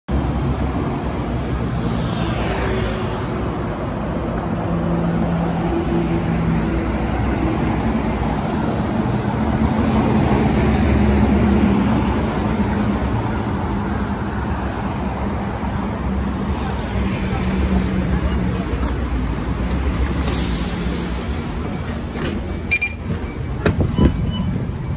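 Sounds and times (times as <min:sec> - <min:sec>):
bus engine rumble: 0:00.1 - 0:24.9
road traffic passing: 0:00.1 - 0:24.9.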